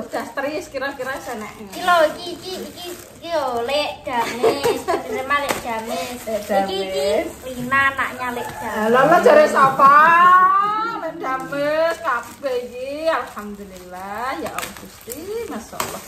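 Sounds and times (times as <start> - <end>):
people talking and laughing: 0.0 - 13.5.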